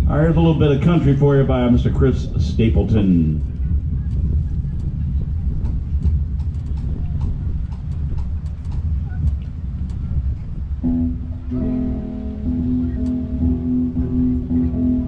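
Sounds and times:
low rumble: 0:00.0 - 0:15.0
electric guitar country music: 0:10.8 - 0:15.0.

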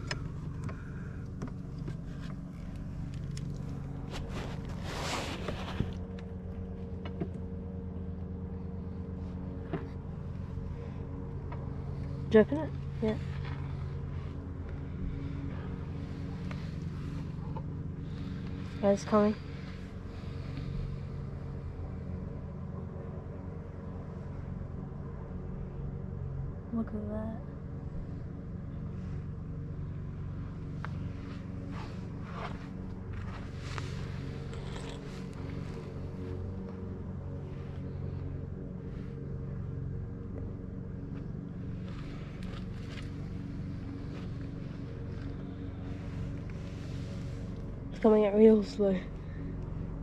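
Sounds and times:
rustling and scraping: 0:00.0 - 0:07.2, 0:30.8 - 0:36.6, 0:41.1 - 0:47.6
steady low motor hum: 0:00.0 - 0:50.0.

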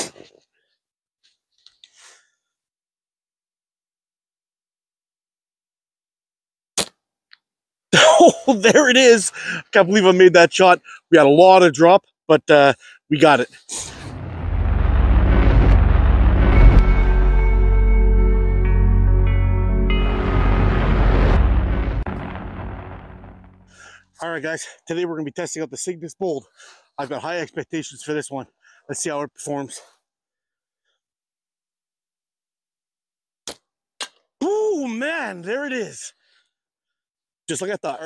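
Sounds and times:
deep rumbling fiery boom: 0:13.9 - 0:23.8.

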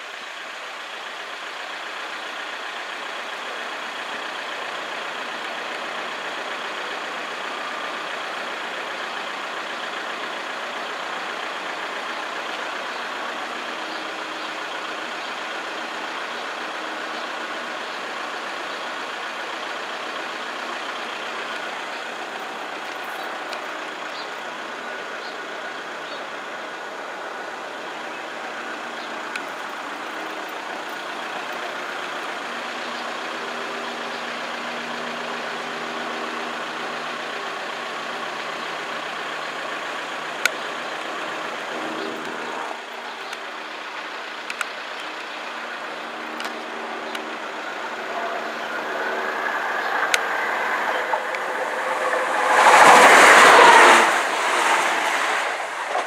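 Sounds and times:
continuous rumble: 0:00.0 - 0:56.0.

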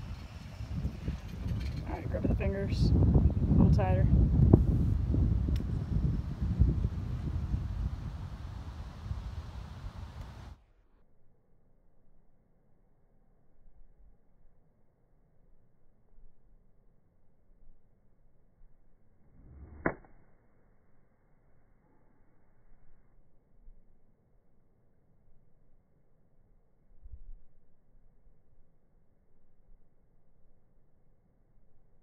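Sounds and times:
wind buffeting microphone: 0:00.0 - 0:10.6
faint click: 0:10.2 - 0:10.4
club downswing rush: 0:19.3 - 0:20.4
golf club striking ball: 0:19.7 - 0:20.2.

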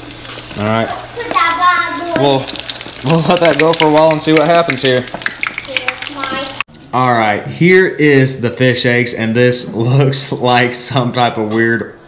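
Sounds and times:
hot oil sizzling and bubbling: 0:00.0 - 0:07.6.

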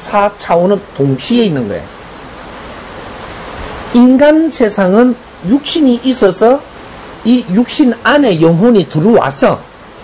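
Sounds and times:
running water rushing: 0:00.0 - 0:10.0.

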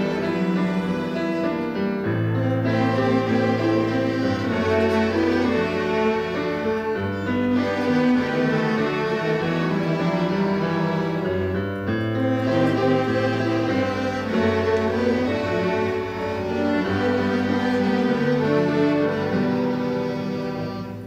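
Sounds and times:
string ensemble playing: 0:00.0 - 0:21.0.

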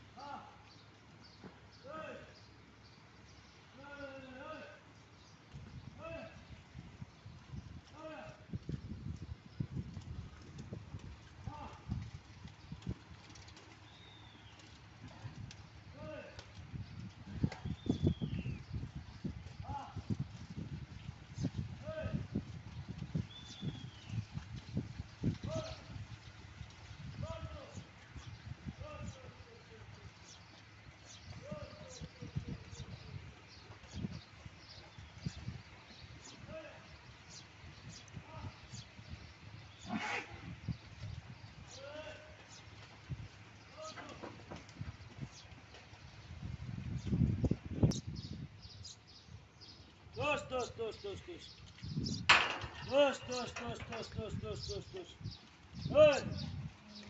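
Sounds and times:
cows thumping and shuffling: 0:00.8 - 0:01.8, 0:06.6 - 0:47.6, 0:51.1 - 0:55.8
short bird calls: 0:36.2 - 0:40.9
cow snorting: 0:39.8 - 0:40.6.

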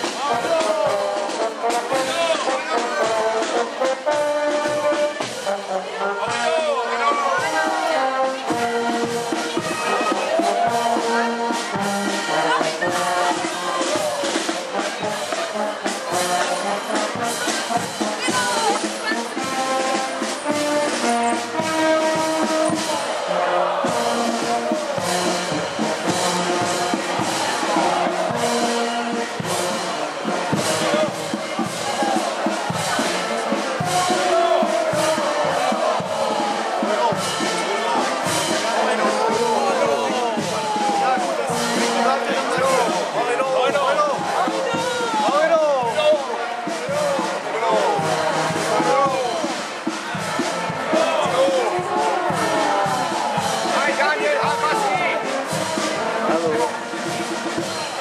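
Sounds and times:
brass band music: 0:00.0 - 0:58.0
people talking: 0:00.0 - 0:58.0.

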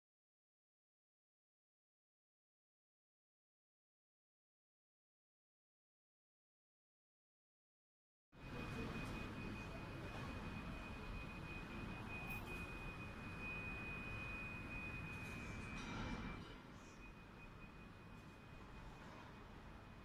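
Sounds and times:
high-pitched tone: 0:08.4 - 0:18.9
low building hum: 0:08.4 - 0:20.0.

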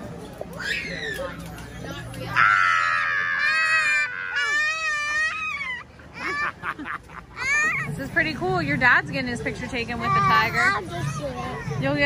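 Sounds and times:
child screaming: 0:02.4 - 0:06.5.

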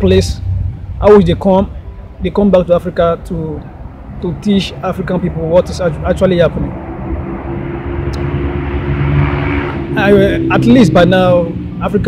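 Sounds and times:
road noise: 0:00.0 - 0:12.0
vehicle engine drone: 0:00.0 - 0:12.0.

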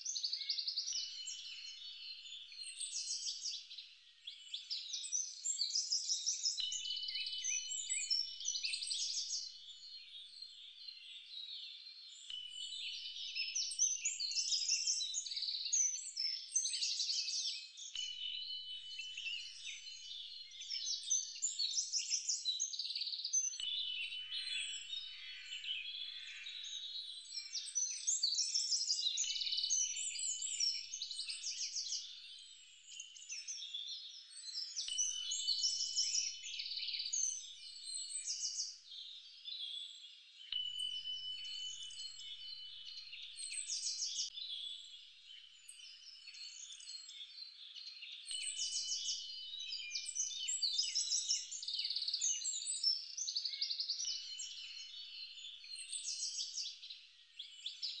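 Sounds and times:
birds chirping and singing: 0:00.0 - 0:58.0.

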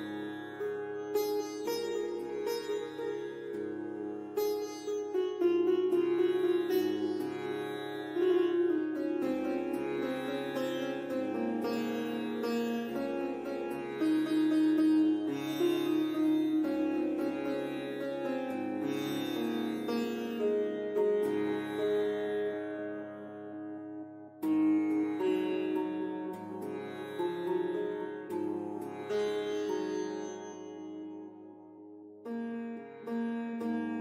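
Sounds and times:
plucked-string indian melody: 0:00.0 - 0:34.0.

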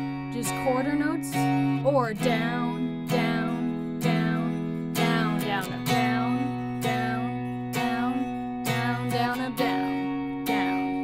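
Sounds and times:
electric guitar strumming: 0:00.0 - 0:11.0.

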